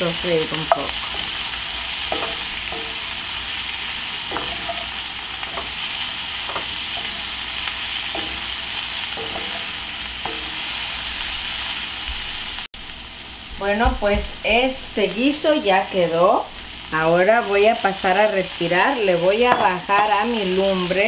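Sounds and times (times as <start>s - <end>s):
vegetables sizzling in oil: 0.0s - 21.0s
wooden spoon scraping a pan: 0.6s - 12.5s.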